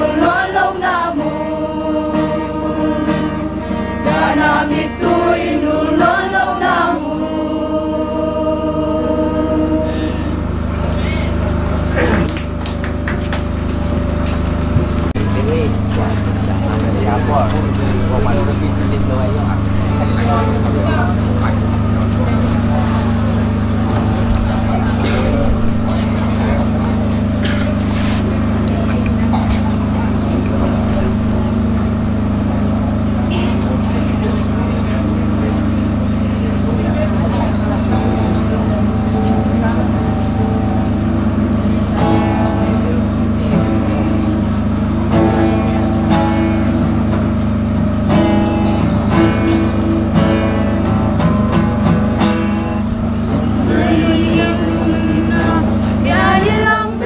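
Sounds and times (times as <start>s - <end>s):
young women singing a hymn: 0.0s - 10.7s, 37.6s - 44.0s, 53.3s - 57.0s
instrumental accompaniment: 37.0s - 57.0s.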